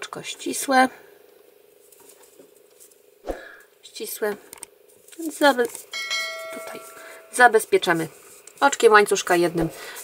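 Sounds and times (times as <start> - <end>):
faint steady hum: 0.0 - 10.0
woman's soft voice: 6.5 - 10.0.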